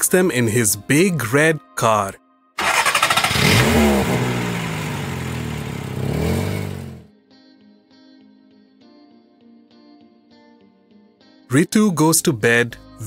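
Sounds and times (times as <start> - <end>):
car engine revving and driving off: 2.6 - 7.1.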